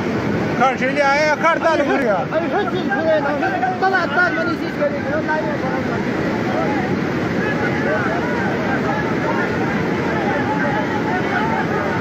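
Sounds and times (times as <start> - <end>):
floodwater rushing: 0.0 - 12.0.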